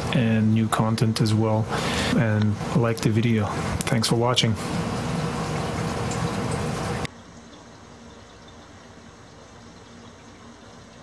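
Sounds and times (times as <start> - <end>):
aquarium filter water noise: 0.0 - 11.0
faint hum: 0.0 - 11.0.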